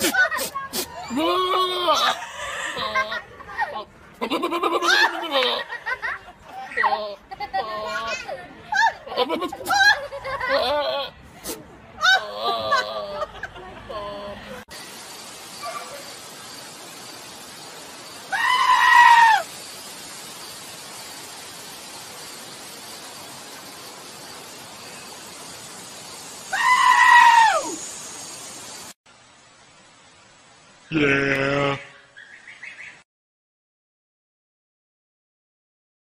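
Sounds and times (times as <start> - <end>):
goat bleating: 1.1 - 3.2, 4.2 - 5.7, 10.4 - 11.1.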